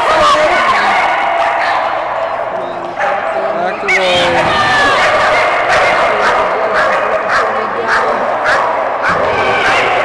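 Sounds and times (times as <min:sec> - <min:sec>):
din of voices in echoing hall: 0:00.0 - 0:10.0
dogs barking: 0:00.0 - 0:10.0.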